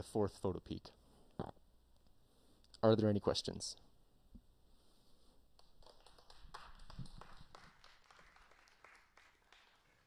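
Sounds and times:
faint scattered clapping: 0:05.5 - 0:10.0.

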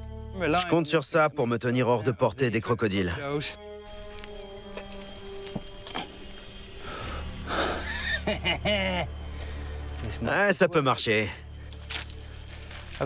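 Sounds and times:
background music with sustained notes: 0:00.0 - 0:13.0.

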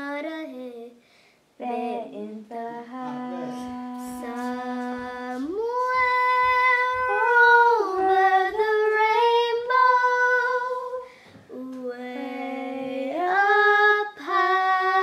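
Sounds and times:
girl singing unaccompanied: 0:00.0 - 0:01.0, 0:01.6 - 0:15.0.

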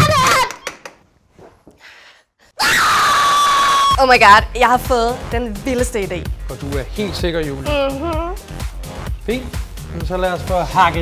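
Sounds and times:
woman screaming: 0:02.6 - 0:04.0.

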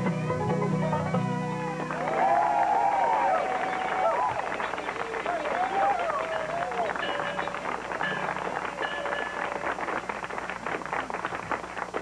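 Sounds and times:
audience applauding: 0:01.8 - 0:12.0.

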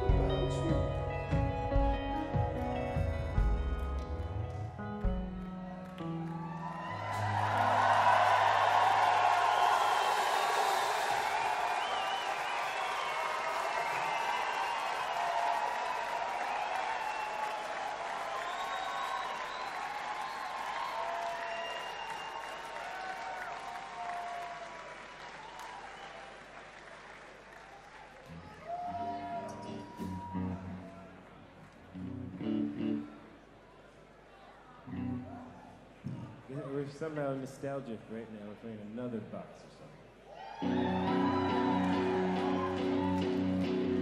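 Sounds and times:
audience applauding and cheering: 0:02.5 - 0:32.2, 0:40.3 - 0:44.0
whistles: 0:11.3 - 0:13.2, 0:18.3 - 0:22.7, 0:25.4 - 0:26.2.

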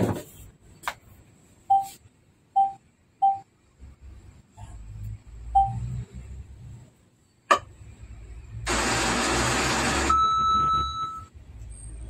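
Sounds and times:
short electronic beeps: 0:05.5 - 0:05.9, 0:10.1 - 0:11.4.

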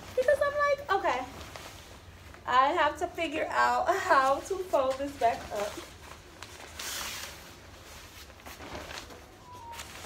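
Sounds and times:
cloth backdrop rustling: 0:00.0 - 0:10.0.

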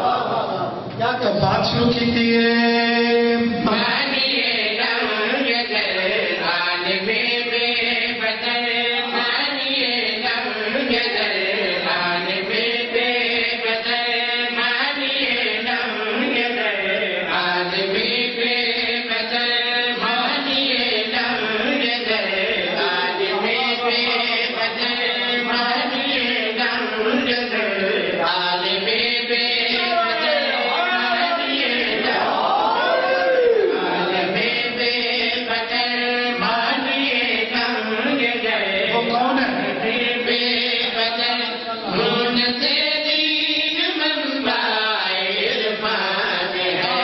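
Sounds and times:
men chanting into a microphone: 0:00.0 - 0:47.0.

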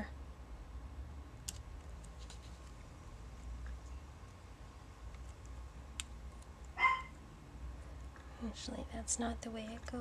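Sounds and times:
dog barking: 0:06.8 - 0:07.1.

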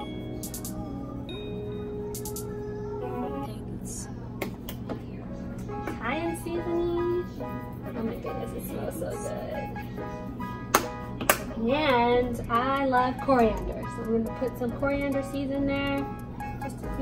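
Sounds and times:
background music: 0:00.0 - 0:17.0
voice: 0:06.0 - 0:07.3, 0:08.0 - 0:09.7, 0:11.6 - 0:16.1.

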